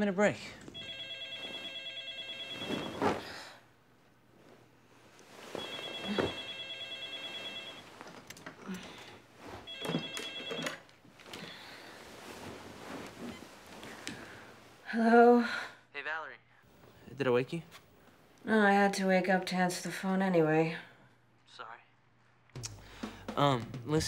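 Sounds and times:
telephone ringing: 0.7 - 3.2, 5.6 - 8.2, 9.6 - 11.0.

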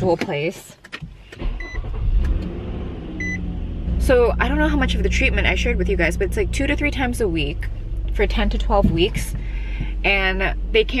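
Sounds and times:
car engine starting and idling: 0.0 - 11.0.

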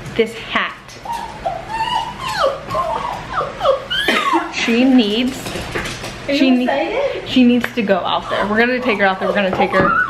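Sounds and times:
dog whining: 1.0 - 4.5, 8.3 - 10.0.

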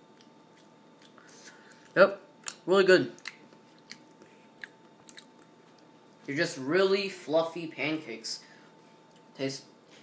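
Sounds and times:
faint mouth clicks chewing: 0.1 - 5.9.

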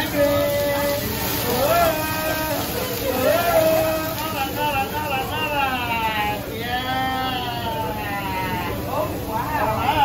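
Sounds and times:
dining-room chatter: 0.0 - 10.0.

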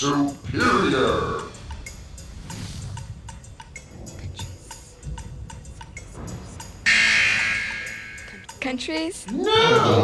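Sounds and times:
game show buzzer: 6.9 - 8.3.

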